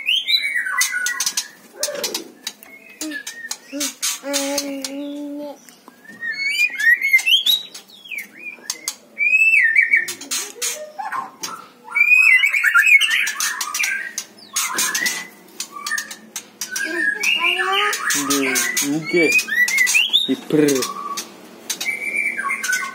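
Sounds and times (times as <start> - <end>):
bird singing whistled phrases: 5.9 - 10.1, 11.9 - 21.2, 21.8 - 22.9.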